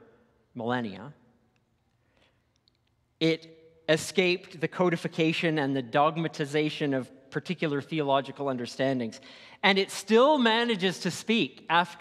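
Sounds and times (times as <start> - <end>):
man speaking: 0.0 - 1.2, 3.2 - 12.0.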